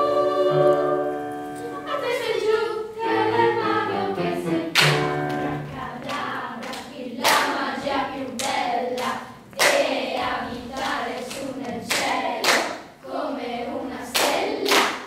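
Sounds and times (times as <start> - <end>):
children's choir singing: 0.0 - 15.0
sharp handclaps: 6.1 - 7.6, 8.4 - 9.9, 10.8 - 12.9, 14.2 - 15.0.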